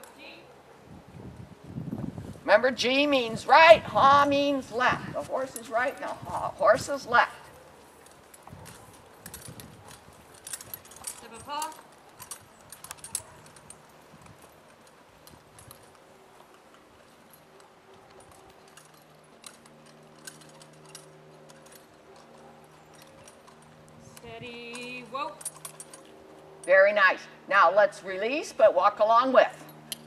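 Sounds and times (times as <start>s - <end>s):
harness jingling: 2.2s - 30.0s
hoof clicks: 2.5s - 27.0s.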